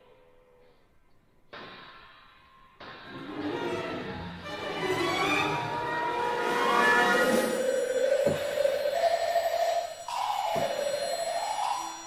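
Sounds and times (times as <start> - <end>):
sustained wavering pitched line: 5.3 - 12.0.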